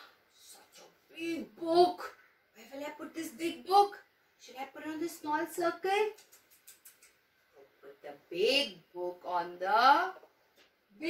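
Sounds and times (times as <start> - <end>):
woman speaking: 0.4 - 6.2, 7.8 - 10.3.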